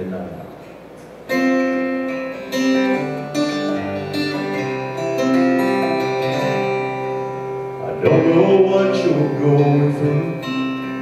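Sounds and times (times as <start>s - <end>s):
acoustic guitar chords: 1.2s - 11.0s.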